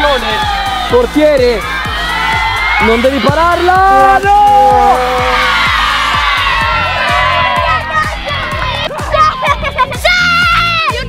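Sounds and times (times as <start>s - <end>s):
background music with steady beat: 0.0s - 11.0s
children cheering and shouting: 0.0s - 11.0s.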